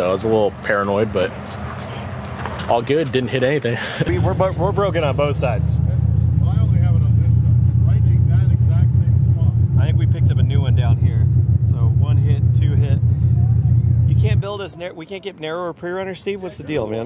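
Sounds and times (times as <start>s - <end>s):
vehicle engine idling: 0.0s - 15.2s.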